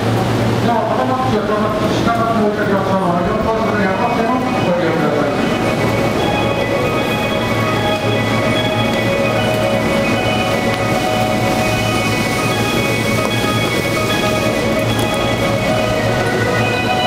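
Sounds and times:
chiming electronic tune: 3.8s - 17.0s.

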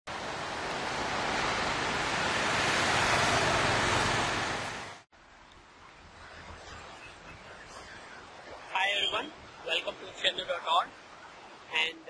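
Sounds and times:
ocean surf on a beach: 0.1s - 12.0s.

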